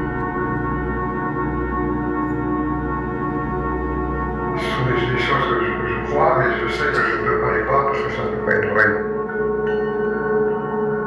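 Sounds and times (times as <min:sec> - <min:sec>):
bell-like electronic drone: 0:00.0 - 0:11.0.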